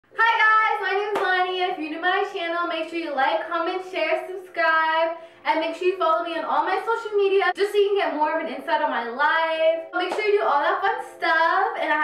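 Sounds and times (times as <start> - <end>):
hand clap: 1.1 - 1.4, 10.1 - 10.3.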